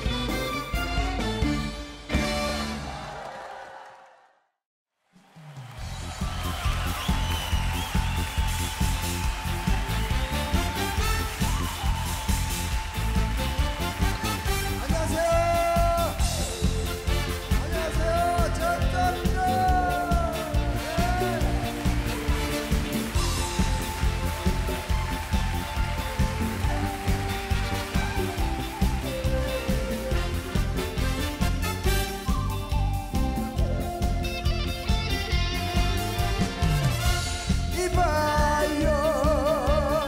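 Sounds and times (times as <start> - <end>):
band playing upbeat instrumental: 0.0 - 3.0, 5.8 - 40.0.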